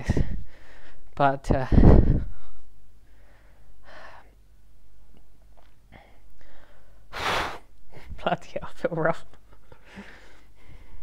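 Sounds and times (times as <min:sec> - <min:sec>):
man breathing heavily: 0:00.0 - 0:04.4, 0:05.9 - 0:08.2, 0:09.6 - 0:11.0.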